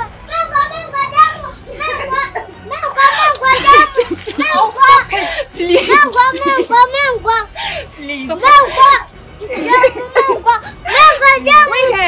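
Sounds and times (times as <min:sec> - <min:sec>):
child shouting and crying: 0:00.0 - 0:07.6, 0:08.3 - 0:12.0.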